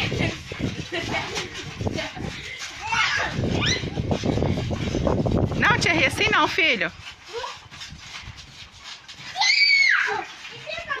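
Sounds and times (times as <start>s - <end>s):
child squealing: 2.8s - 4.0s, 9.4s - 10.3s
children's voices: 9.4s - 11.0s.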